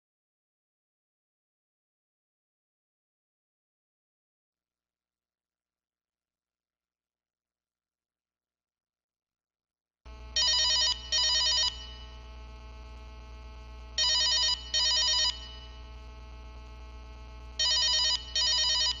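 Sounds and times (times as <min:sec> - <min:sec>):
low electrical hum: 0:10.1 - 0:19.0
telephone ringing: 0:10.3 - 0:12.2, 0:14.0 - 0:15.9, 0:17.6 - 0:19.0.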